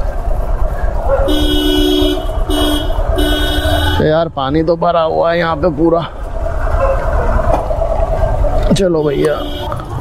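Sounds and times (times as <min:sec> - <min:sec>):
two-tone vehicle horn honking: 0:01.2 - 0:04.1, 0:09.0 - 0:09.8.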